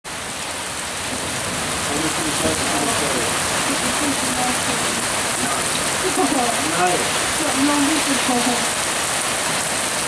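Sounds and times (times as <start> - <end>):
heavy rain on pavement: 0.1 - 10.0.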